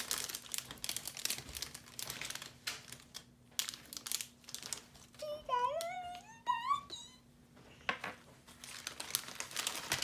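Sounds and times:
paper wrapper crinkling: 0.0s - 6.2s, 8.4s - 10.0s.

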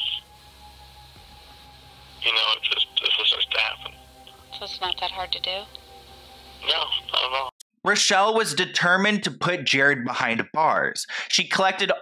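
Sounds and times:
man talking on telephone: 2.2s - 4.0s, 6.6s - 12.0s.

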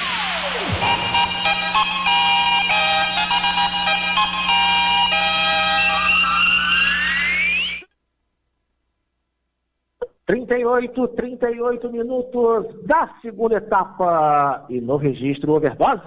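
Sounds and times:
rising sweep: 0.0s - 4.6s
electronic jingle melody: 0.0s - 7.9s.

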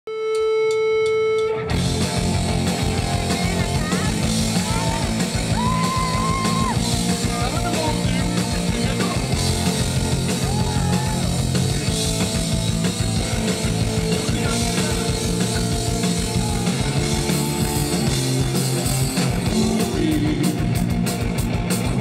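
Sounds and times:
live rock band: 0.3s - 22.0s
high melodic line: 0.5s - 21.0s.

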